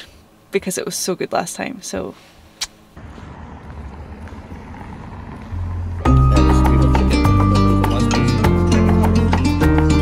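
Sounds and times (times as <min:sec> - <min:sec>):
distant traffic: 0:02.6 - 0:07.8
deep bass background music: 0:05.6 - 0:10.0.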